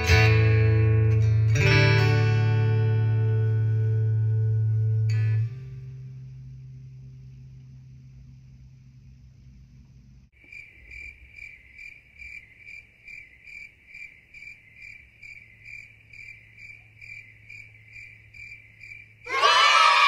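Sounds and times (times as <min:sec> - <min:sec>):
faint low hum: 0:02.9 - 0:20.0
crickets chirping: 0:03.2 - 0:20.0
crowd cheering: 0:19.3 - 0:20.0.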